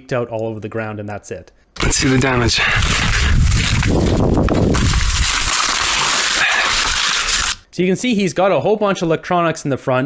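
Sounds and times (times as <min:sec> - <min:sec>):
crackling in grass: 0:01.8 - 0:07.6.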